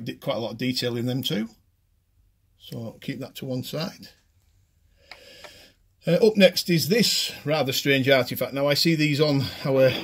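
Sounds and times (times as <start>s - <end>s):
person speaking: 2.6s - 4.3s, 6.0s - 10.0s
soft breath drawn in: 4.8s - 5.9s.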